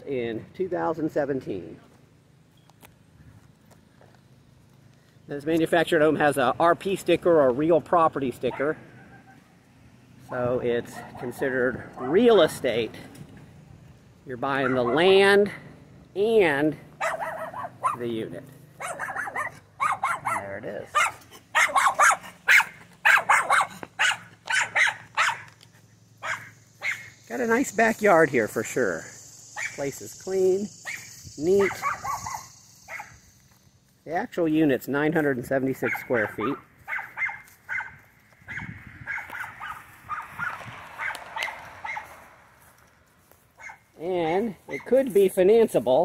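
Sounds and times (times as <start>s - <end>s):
dog barking: 8.5s - 9.5s, 10.9s - 12.3s, 14.6s - 15.1s, 17.0s - 18.1s, 18.8s - 25.5s, 26.2s - 27.1s, 29.6s - 29.8s, 30.8s - 33.2s, 35.8s - 42.2s, 43.6s - 43.9s.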